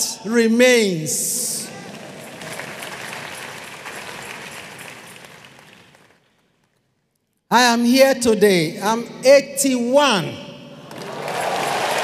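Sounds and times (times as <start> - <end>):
audience clapping: 1.7 - 6.9, 10.9 - 12.0.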